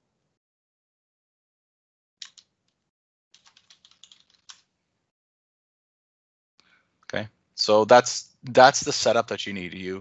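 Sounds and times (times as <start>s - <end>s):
faint typing on keyboard: 2.2s - 4.7s.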